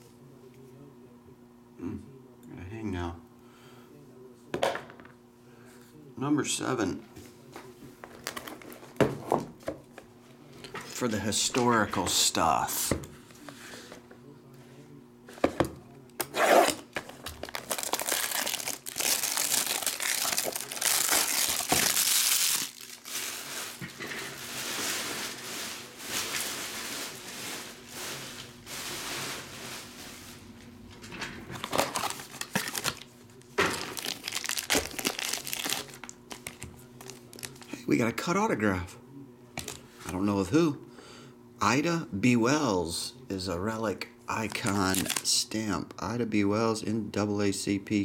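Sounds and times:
plastic wrap crinkling: 17.0 - 30.4, 31.5 - 37.7, 44.4 - 45.4.

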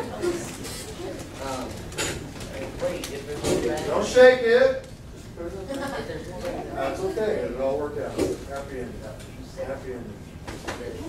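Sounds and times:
children talking and laughing: 0.0 - 4.0, 5.4 - 7.4.

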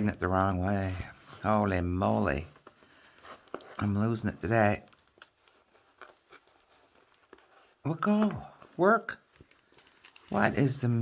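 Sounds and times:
hands rustling plastic sheet: 0.0 - 11.0.

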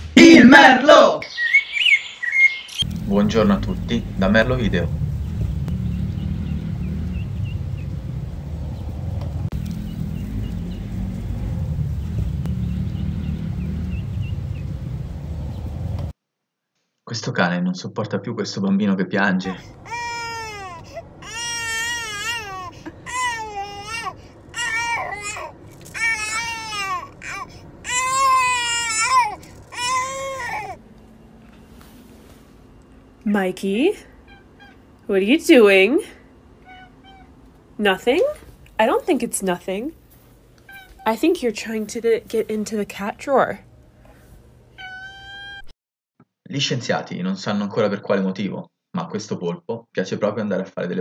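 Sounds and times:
faint bird chirps: 1.2 - 2.9
steady low rumble: 2.8 - 16.1
baby crying: 19.5 - 30.8, 36.6 - 37.3, 40.7 - 41.1, 44.8 - 45.7.

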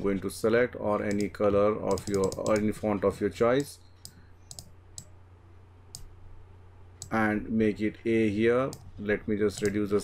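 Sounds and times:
faint low hum: 0.0 - 10.0
computer mouse clicks: 1.1 - 1.3, 1.9 - 2.7, 4.0 - 5.1, 5.9 - 6.1, 8.7 - 8.9, 9.5 - 9.8.

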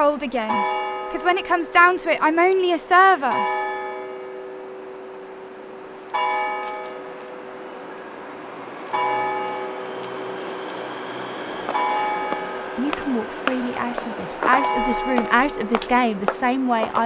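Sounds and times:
church bell tolling: 0.0 - 17.0
lingering bell hum: 0.0 - 17.0.

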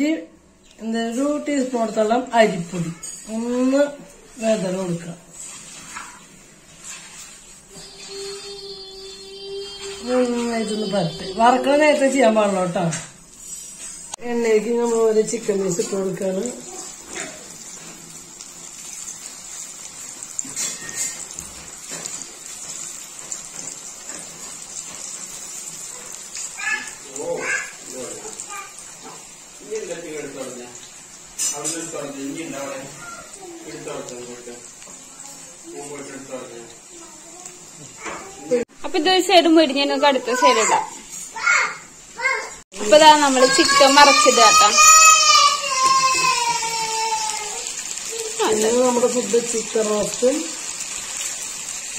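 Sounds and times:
chicken sizzling in hot oil: 0.5 - 51.9.

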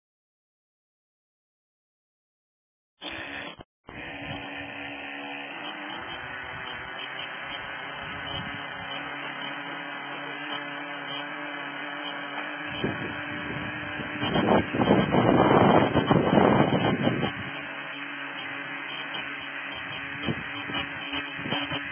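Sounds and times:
small model engine running roughly: 3.0 - 21.9
steady low hum: 3.2 - 21.9.

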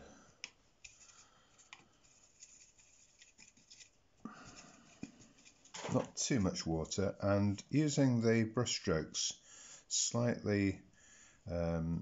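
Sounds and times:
brush rubbing in wet paint: 0.8 - 5.7.

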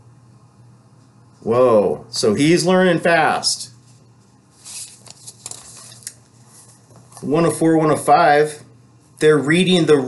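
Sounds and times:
book pages being flipped: 3.9 - 7.3.

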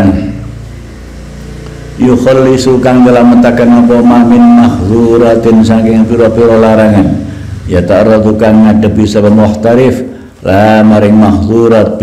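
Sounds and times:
man speaking: 0.0 - 0.5, 2.0 - 12.0
steady low hum: 0.0 - 12.0.

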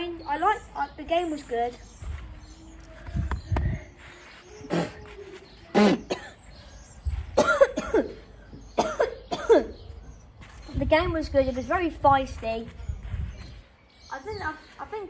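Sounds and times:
boy coughing: 4.7 - 5.0, 5.7 - 6.6, 7.3 - 9.9.

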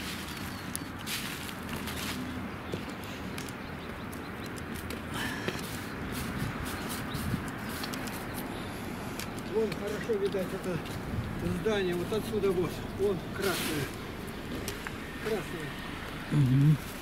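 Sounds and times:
short scuffs and clicks: 0.0 - 8.5
footsteps on asphalt: 0.0 - 17.0
low street rumble: 0.0 - 17.0.

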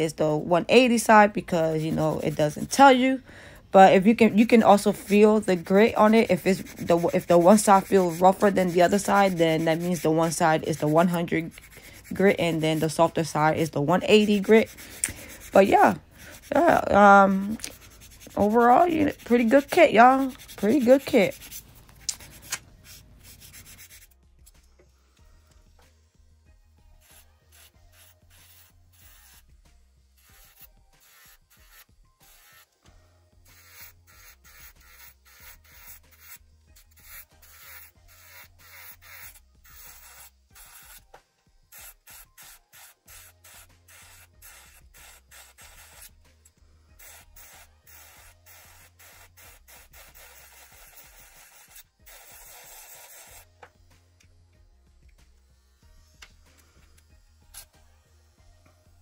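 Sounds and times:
quiet background music: 0.0 - 59.0
nail file rasping: 5.0 - 16.8, 17.4 - 24.2, 27.0 - 29.4, 30.2 - 32.7, 33.5 - 41.1, 41.7 - 46.2, 47.0 - 53.5, 56.8 - 57.8
electric nail drill grinding: 5.1 - 21.2, 27.0 - 29.5, 30.1 - 46.2, 46.9 - 57.8.

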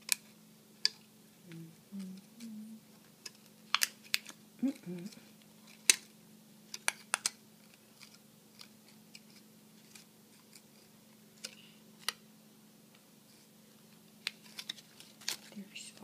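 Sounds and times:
faint steady hum: 0.0 - 16.0
thin plastic clicking and crinkling: 3.2 - 6.1, 6.7 - 12.2, 14.2 - 16.0.

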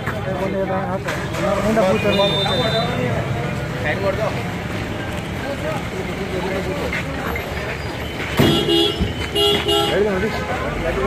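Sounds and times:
crowd chatter: 0.0 - 11.0
vehicle horn honking: 2.1 - 3.0, 8.4 - 10.1.

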